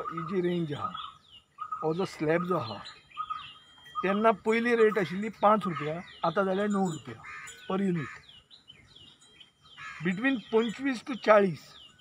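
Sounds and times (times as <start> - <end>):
small bird chirping: 0.0 - 12.0.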